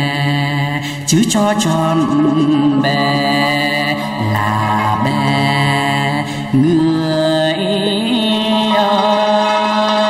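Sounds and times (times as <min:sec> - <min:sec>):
man singing folk song: 0:00.0 - 0:10.0.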